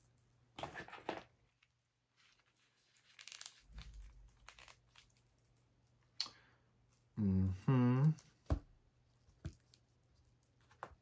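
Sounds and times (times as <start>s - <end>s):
doll clothes rustling and crinkling: 0.6s - 5.7s.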